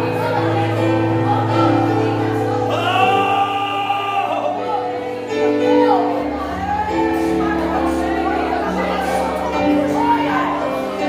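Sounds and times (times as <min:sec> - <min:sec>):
loud solo voice singing: 0:00.0 - 0:05.8
gospel worship music: 0:00.0 - 0:11.0
voices singing: 0:00.0 - 0:11.0.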